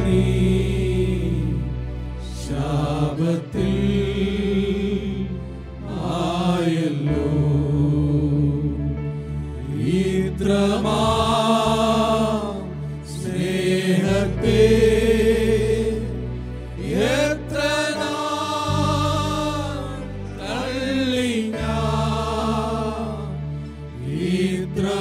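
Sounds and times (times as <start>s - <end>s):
keyboard accompaniment: 0.0s - 25.0s
group of men singing: 2.4s - 8.8s, 9.7s - 16.1s, 16.8s - 23.4s, 24.0s - 25.0s.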